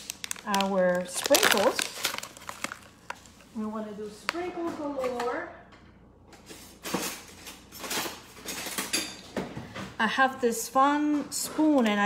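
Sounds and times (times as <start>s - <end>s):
metal utensils clinking: 6.9s - 9.3s.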